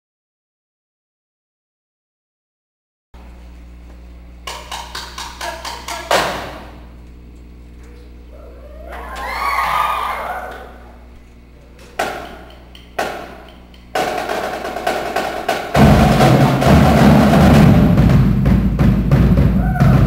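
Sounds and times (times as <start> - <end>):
drumline drumming: 4.4 - 6.7, 12.0 - 20.0
sharp accented drum hits: 14.0 - 20.0
deep bass drum strokes: 15.7 - 20.0.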